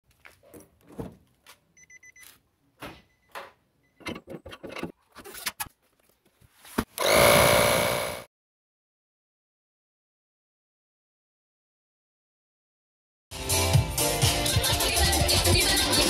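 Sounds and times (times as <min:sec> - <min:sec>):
faint high beeps: 0:01.8 - 0:02.3
tire inflator compressor running: 0:07.0 - 0:08.3.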